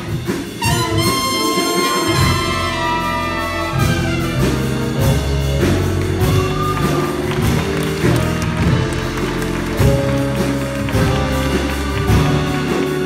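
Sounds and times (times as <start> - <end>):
big jazz band playing: 0.0 - 13.0.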